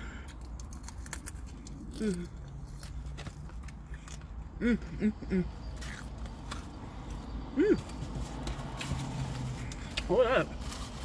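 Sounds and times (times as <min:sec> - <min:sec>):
car interior hum: 0:02.4 - 0:11.0.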